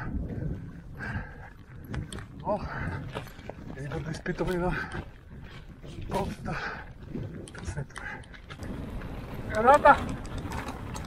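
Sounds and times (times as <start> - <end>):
rider breathing hard: 0.0 - 3.8, 4.6 - 9.1
wind on microphone: 0.0 - 11.0
bike rumbling over rocky trail: 1.6 - 11.0.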